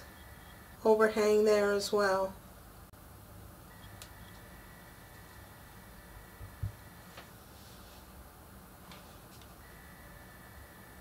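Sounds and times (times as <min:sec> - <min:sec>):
faint steady high whine: 0:00.0 - 0:11.0.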